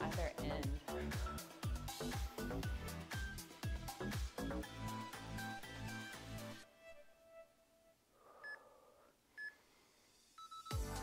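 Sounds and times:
loud background music: 0.0 - 6.6, 10.7 - 11.0
electronic timer beeps: 10.4 - 10.8.

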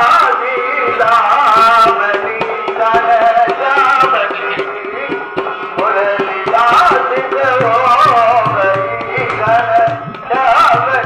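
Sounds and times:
hand drum beating quickly: 0.0 - 11.0
harmonium: 0.0 - 11.0
deep bass drum tone: 2.4 - 11.0.

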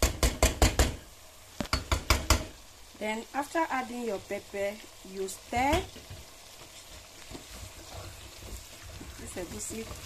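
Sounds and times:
wooden spoon knocking pot: 0.0 - 1.0, 1.6 - 2.6.

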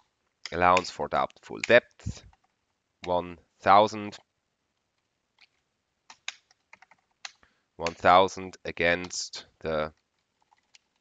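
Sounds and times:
faint computer keyboard keystrokes: 5.4 - 8.1, 9.9 - 11.0.

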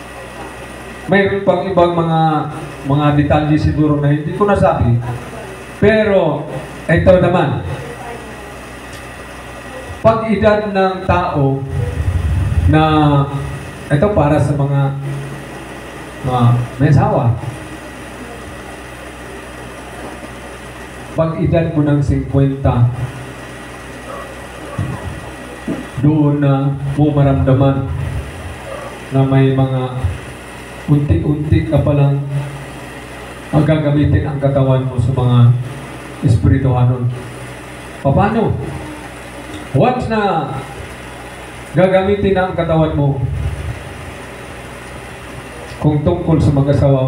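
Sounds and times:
low constant hum: 0.0 - 47.0
room hiss: 9.2 - 47.0
person speaking into a microphone: 9.8 - 15.2.

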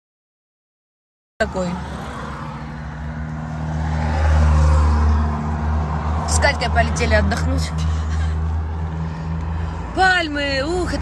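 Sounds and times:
vehicle engine rumbling: 1.4 - 11.0.

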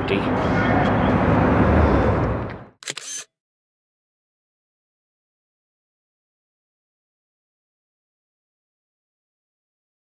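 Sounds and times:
road noise: 0.0 - 3.2
wind: 0.0 - 3.3
camera shutter click: 2.8 - 3.3.

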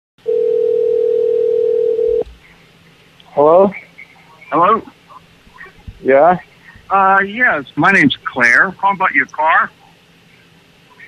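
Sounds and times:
telephone line tone: 0.2 - 2.2.

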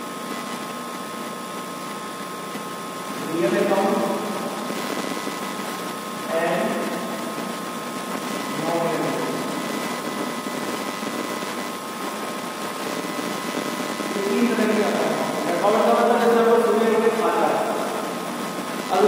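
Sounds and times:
thin high whine: 0.0 - 19.0
man's voice: 3.2 - 4.2, 6.3 - 6.9, 8.6 - 9.5, 14.2 - 17.8.

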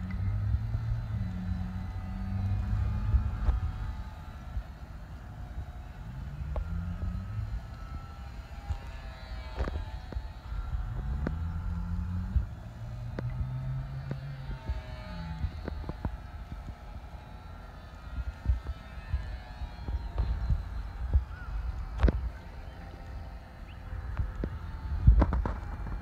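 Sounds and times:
low rumble: 0.0 - 26.0.

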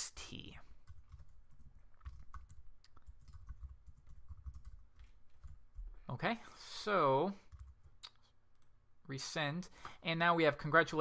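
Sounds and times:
typing on computer keyboard: 0.8 - 5.9, 7.5 - 8.0.

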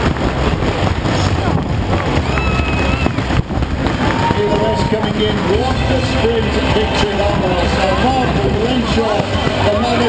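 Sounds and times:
low background rumble: 0.0 - 10.0
commentator talking over loudspeakers: 4.2 - 10.0.

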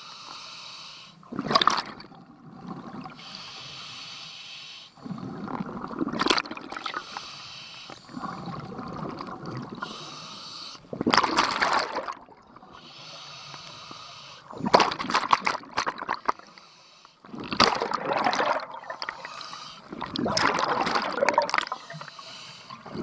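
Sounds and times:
regulator breathing hiss: 0.0 - 1.2, 3.2 - 5.0, 7.0 - 8.2, 9.8 - 10.8, 12.8 - 14.6, 16.5 - 17.2, 19.2 - 19.9, 21.7 - 22.8
exhaled bubbles gushing: 1.3 - 3.2, 5.0 - 7.0, 8.0 - 10.0, 10.9 - 12.8, 14.5 - 16.5, 17.2 - 22.2, 22.8 - 23.0.

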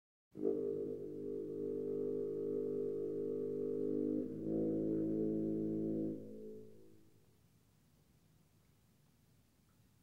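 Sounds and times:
low wind instrument long note: 0.4 - 7.1.

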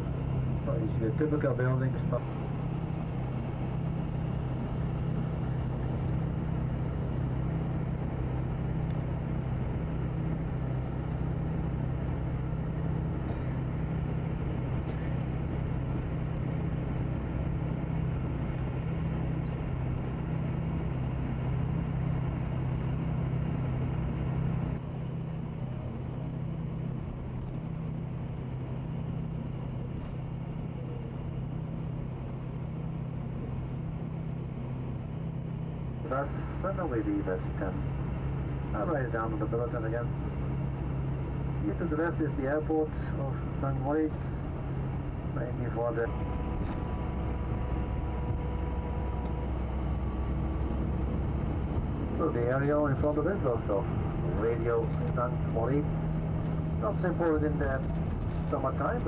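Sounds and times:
engine hum: 0.0 - 59.0
road noise: 0.0 - 59.0.

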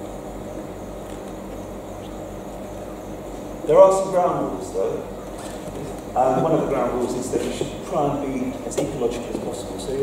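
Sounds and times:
low electrical hum: 0.0 - 10.0
steady hiss: 0.0 - 10.0.

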